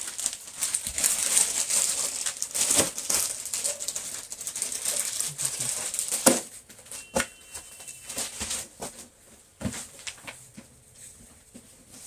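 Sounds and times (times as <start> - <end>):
plastic packaging crinkling: 0.0 - 9.0.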